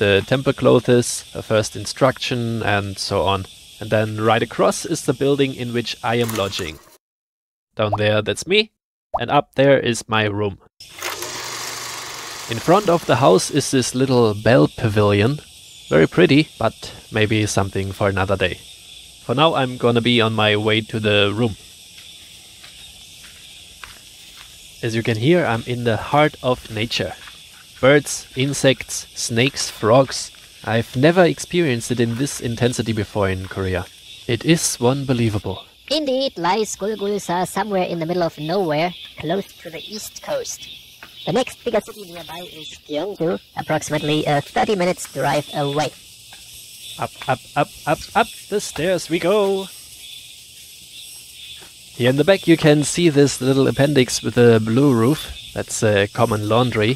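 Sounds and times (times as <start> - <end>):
high-pitched insect drone: 0.0 - 6.9, 10.8 - 56.9
faint footsteps on grass: 21.5 - 30.9, 50.5 - 52.0.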